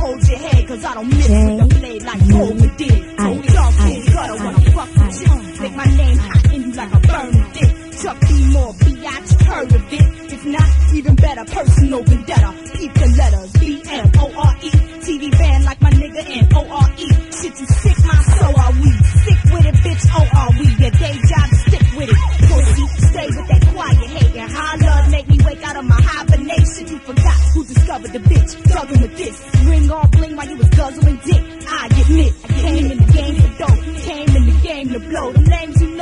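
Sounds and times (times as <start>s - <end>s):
rapping over a beat: 0.0s - 36.0s
heavy bass kick: 1.1s - 5.3s
fast bass hits: 1.2s - 2.8s.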